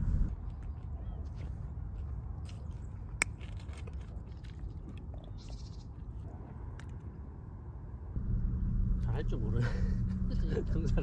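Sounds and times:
low steady rumble: 0.0 - 0.3, 6.2 - 11.0.

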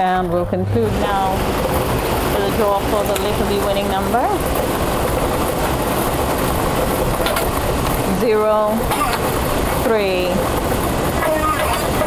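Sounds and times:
lottery machine blowing: 6.6 - 12.0.

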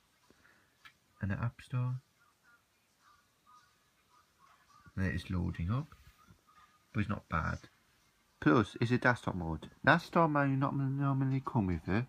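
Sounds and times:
faint singing voice: 0.0 - 8.2.

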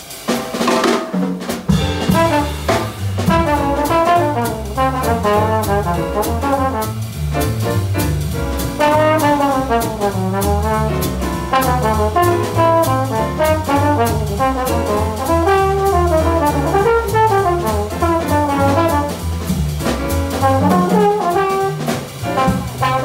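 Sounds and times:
drums with cymbal strikes: 0.0 - 23.0
piano: 0.0 - 23.0
upright bass: 1.7 - 23.0
trombone melody: 1.8 - 19.5, 20.1 - 23.0.

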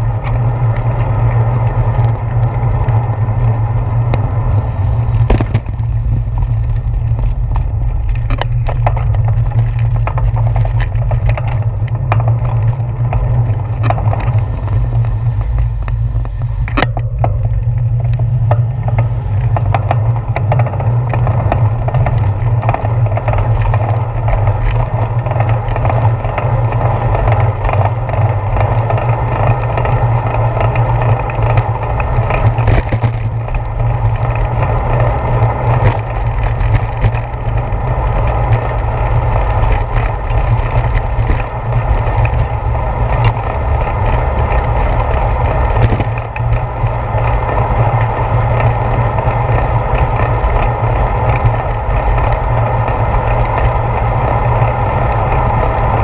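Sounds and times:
wind and road rumble: 0.0 - 56.0.

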